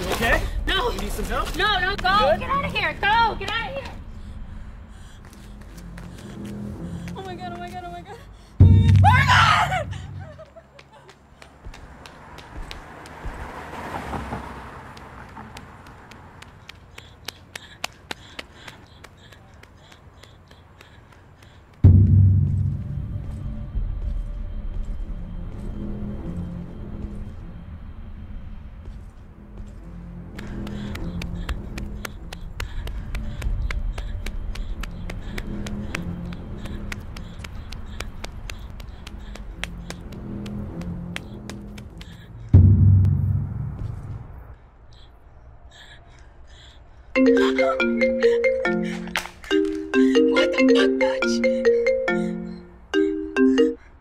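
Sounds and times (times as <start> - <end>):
deep boom: 8.6 - 10.3, 21.8 - 24.0, 42.6 - 44.5
low pulsing bass line: 8.6 - 10.4, 21.8 - 24.4, 42.6 - 44.4.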